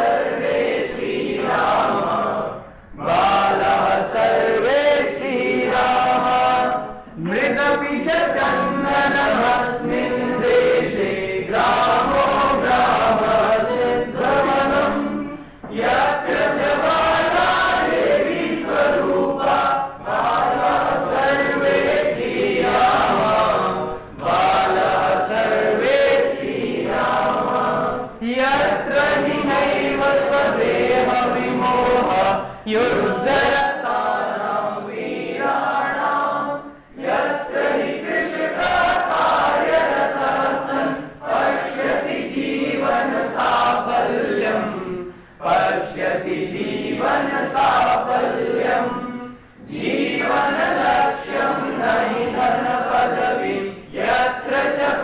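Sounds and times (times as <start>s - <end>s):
group singing in unison: 0.0s - 55.0s.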